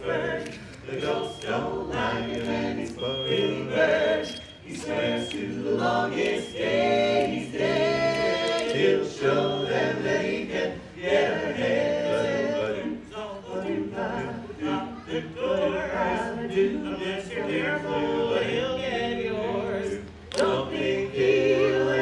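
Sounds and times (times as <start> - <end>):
male quartet singing a cappella: 0.0 - 22.0.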